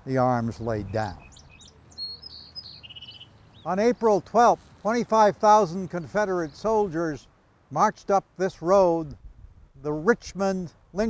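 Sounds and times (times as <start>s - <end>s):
songbirds chirping: 0.0s - 11.0s
bird whistle: 1.0s - 3.3s.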